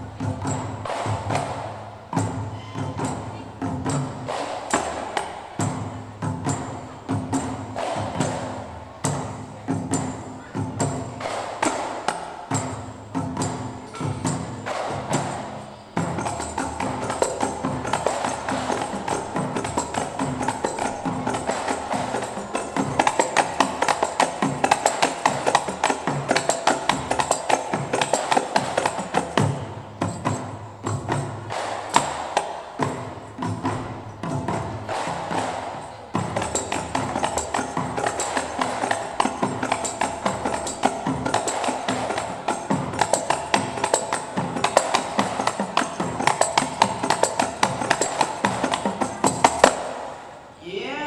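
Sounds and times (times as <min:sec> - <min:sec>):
frame drums fast rhythm: 0:00.0 - 0:50.6.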